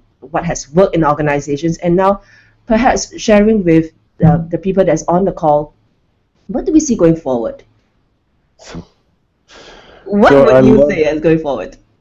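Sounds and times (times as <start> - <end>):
person breathing: 2.2 - 2.6, 9.5 - 10.1
person speaking: 4.2 - 4.9, 10.1 - 11.2.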